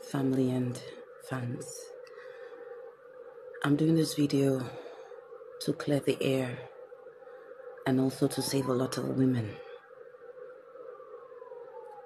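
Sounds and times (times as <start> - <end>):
faint wailing tone: 0.0 - 12.0.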